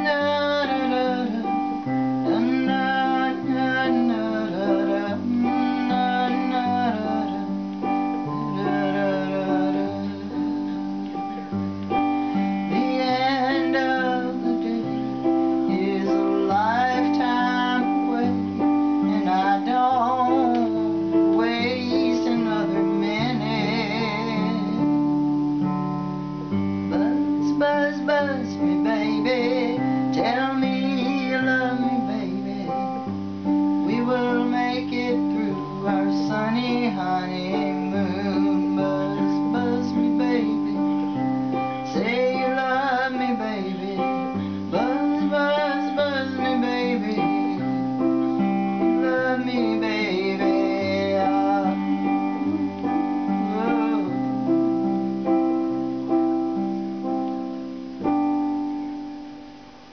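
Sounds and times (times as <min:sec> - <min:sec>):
woman singing wordless notes: 0:00.0 - 0:56.8
electric keyboard chords: 0:00.0 - 0:59.9.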